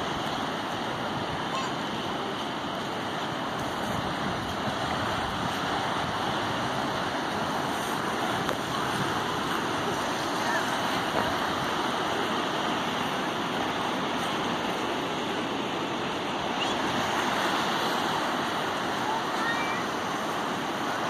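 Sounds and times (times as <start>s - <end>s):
surf breaking on rocky shore: 0.0s - 21.0s.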